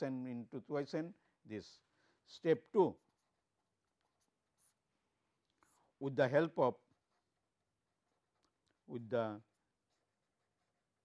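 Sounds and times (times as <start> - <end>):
pen scratching on paper: 2.9 - 6.0, 9.5 - 11.0.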